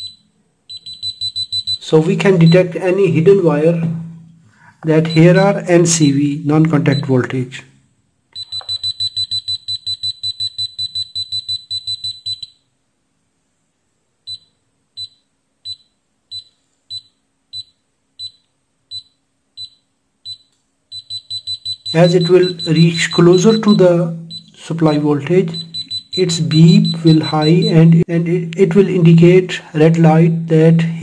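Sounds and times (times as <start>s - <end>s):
high-pitched electronic beeps: 0.0s - 2.7s, 8.3s - 12.6s, 14.3s - 28.1s.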